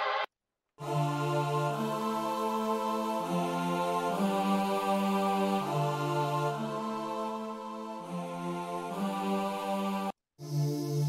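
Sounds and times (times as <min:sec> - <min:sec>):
synth choir chords: 0:00.0 - 0:11.0.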